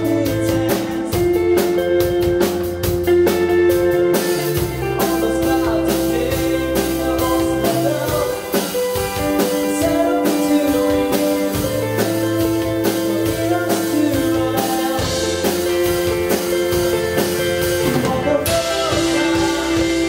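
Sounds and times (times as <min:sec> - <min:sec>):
person singing: 0:00.0 - 0:02.6, 0:03.4 - 0:20.0
drum kit beat: 0:00.0 - 0:20.0
electric guitars ringing: 0:00.0 - 0:20.0.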